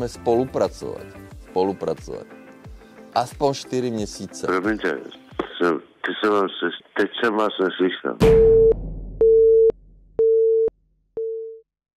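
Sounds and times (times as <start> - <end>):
telephone busy tone beeps: 8.5 - 11.6.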